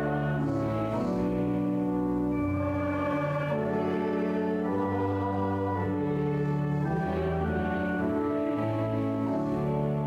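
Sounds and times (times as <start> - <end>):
hymn with organ chords: 0.0 - 10.0.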